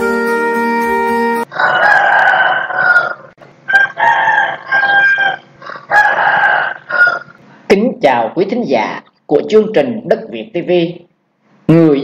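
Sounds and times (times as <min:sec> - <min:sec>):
rooster crowing: 0:01.4 - 0:07.4.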